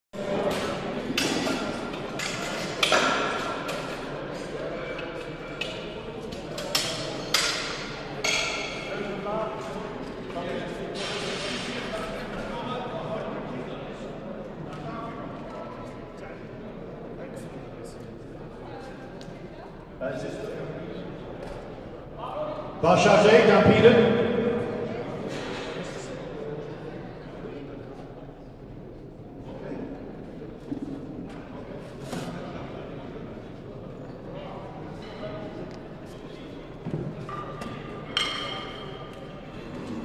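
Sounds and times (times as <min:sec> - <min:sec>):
murmur of echoing voices: 0:00.2 - 0:40.0.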